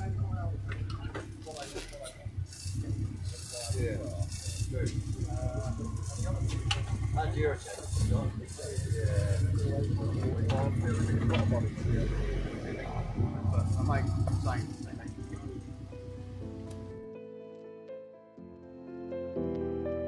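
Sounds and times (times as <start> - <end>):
car engine at low revs: 0.0 - 17.1.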